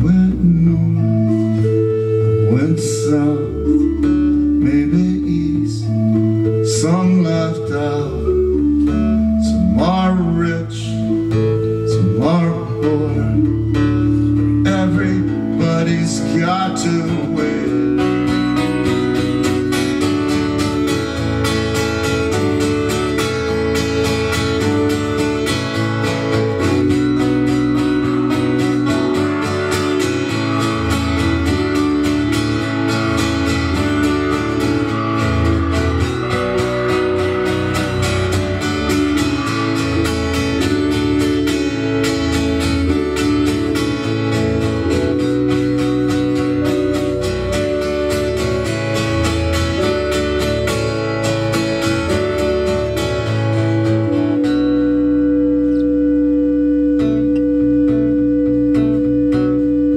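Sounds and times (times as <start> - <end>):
acoustic guitar strumming chords: 0.0 - 59.9
electric keyboard chords: 0.0 - 59.9.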